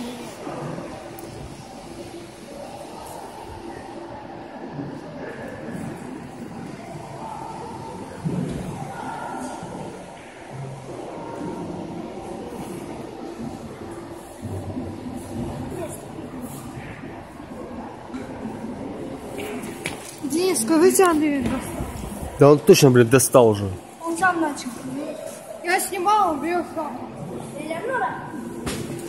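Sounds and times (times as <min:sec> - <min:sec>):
indoor hall background noise: 0:00.0 - 0:29.0
murmur of voices: 0:00.0 - 0:29.0.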